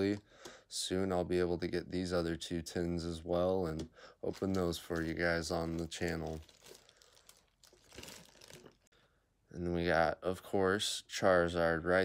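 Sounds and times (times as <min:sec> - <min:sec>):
plastic wrap crinkling: 0:03.8 - 0:08.9.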